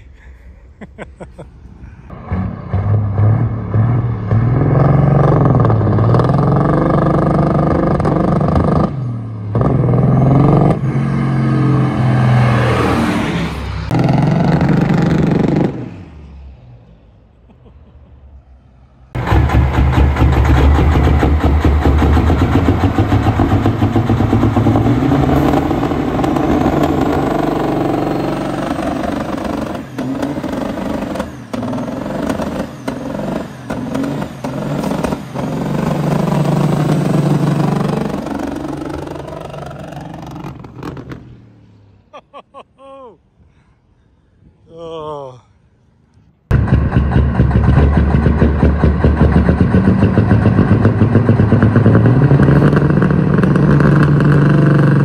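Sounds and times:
diesel truck engine running hard: 2.0s - 16.7s, 18.4s - 41.6s, 46.5s - 55.0s.

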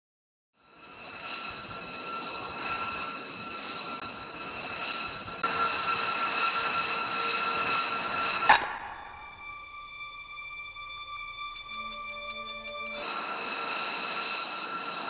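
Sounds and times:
jet engine turbine whine: 0.6s - 15.0s.

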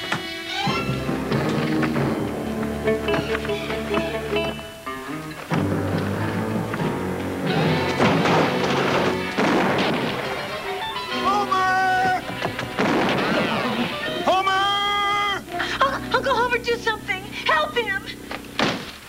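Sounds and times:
western film score music: 0.0s - 19.0s.

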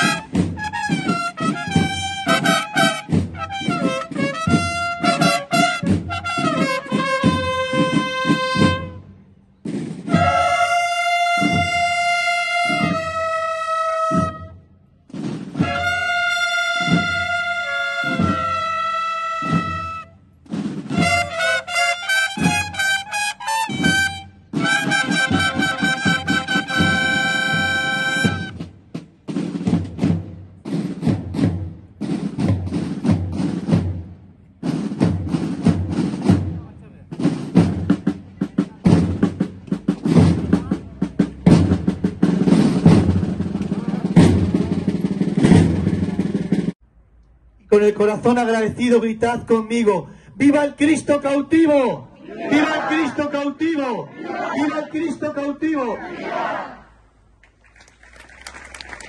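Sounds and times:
cornets playing melody: 0.0s - 9.1s, 10.1s - 14.6s, 15.6s - 20.3s, 20.9s - 28.6s
drums playing march beat: 0.0s - 46.8s, 50.4s - 56.8s.

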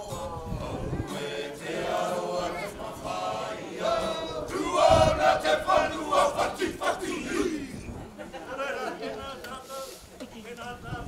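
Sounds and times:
group of voices shouting a chant: 0.1s - 7.9s.

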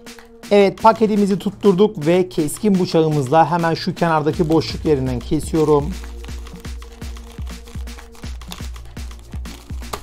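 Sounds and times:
electronic music with kick drum: 0.0s - 10.0s.

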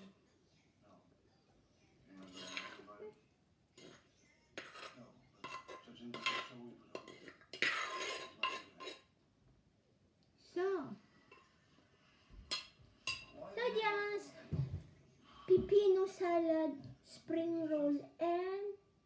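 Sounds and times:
metal spoon scraping clay mortar: 2.2s - 2.9s, 4.6s - 9.1s.

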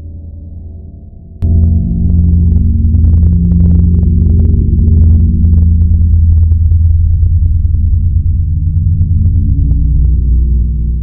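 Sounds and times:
deep rumbling gong drone: 0.0s - 11.0s.

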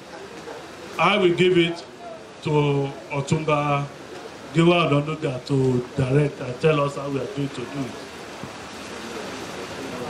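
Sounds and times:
faint crowd voices: 0.0s - 10.0s
outdoor background noise: 0.0s - 10.0s.

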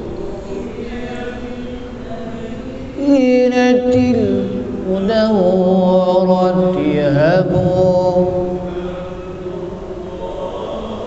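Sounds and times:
man chanting: 0.0s - 11.0s.

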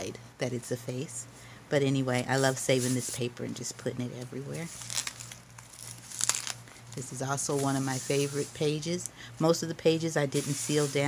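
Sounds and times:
stiff paper page crinkling: 4.6s - 8.5s.

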